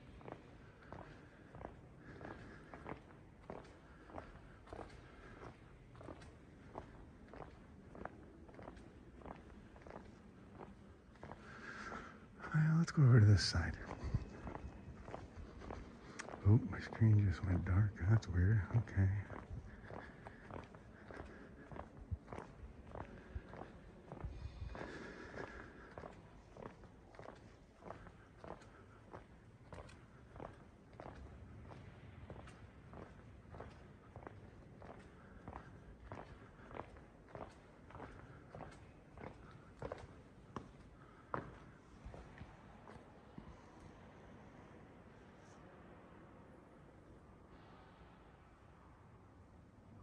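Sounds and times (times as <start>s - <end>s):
footsteps on marble floor: 19.4s - 43.6s.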